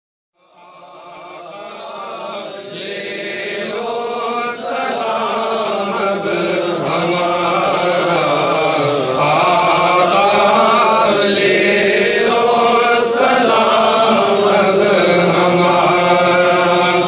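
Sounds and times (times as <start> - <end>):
men chanting together: 0.6 - 17.0.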